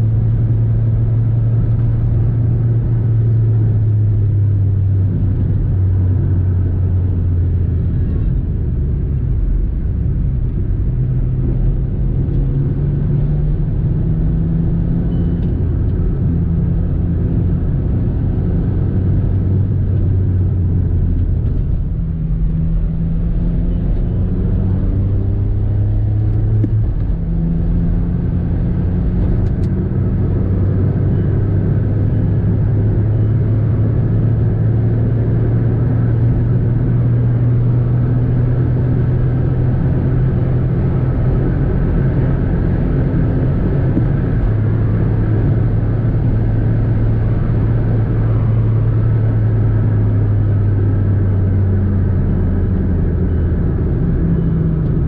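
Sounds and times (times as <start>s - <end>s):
car engine and road noise: 0.0s - 55.0s.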